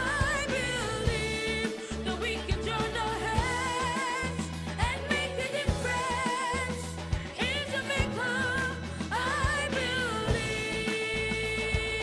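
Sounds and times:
backing track with bass and drums: 0:00.0 - 0:12.0.

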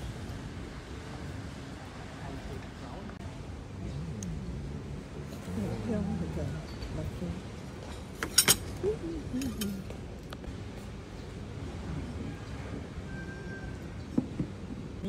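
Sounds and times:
murmur of voices: 0:01.0 - 0:07.7
tableware clinking: 0:08.0 - 0:08.8.

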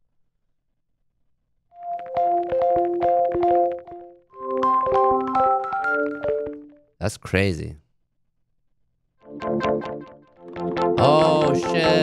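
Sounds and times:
held keyboard-like notes: 0:01.8 - 0:06.8, 0:09.3 - 0:12.0.

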